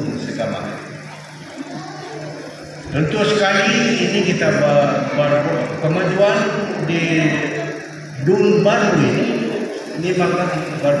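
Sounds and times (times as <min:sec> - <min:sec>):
man speaking over public address: 0:00.0 - 0:01.0, 0:02.8 - 0:11.0.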